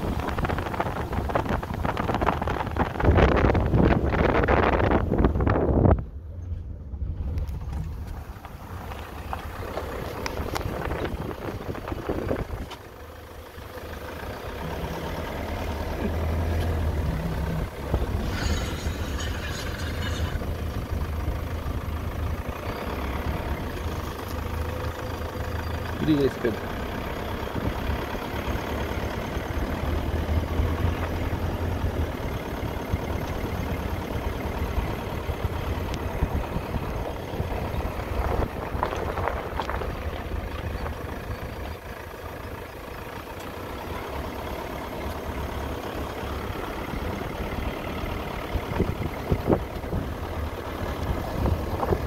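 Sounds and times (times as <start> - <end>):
vehicle engine and road rumble: 0.0 - 52.0.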